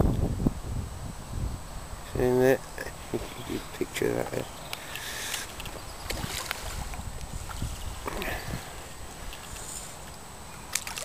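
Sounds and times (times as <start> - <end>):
fish splashing in water: 4.9 - 10.0, 10.7 - 11.0.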